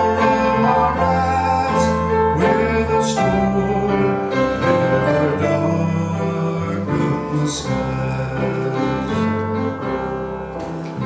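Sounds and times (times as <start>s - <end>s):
men singing: 0.0s - 9.6s
piano chords: 0.0s - 11.0s.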